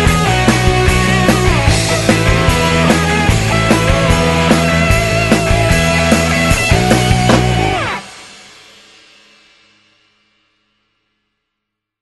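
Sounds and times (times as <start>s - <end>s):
rock band final chord: 0.0s - 8.8s.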